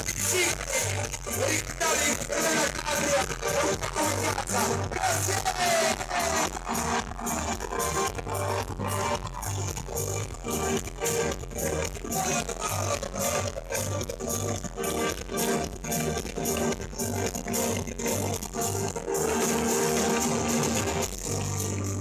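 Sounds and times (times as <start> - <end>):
live band playing: 0.0 - 22.0.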